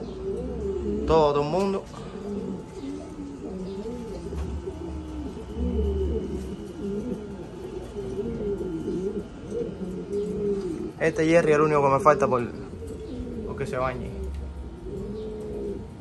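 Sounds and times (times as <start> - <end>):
pigeons cooing: 0.0 - 16.0.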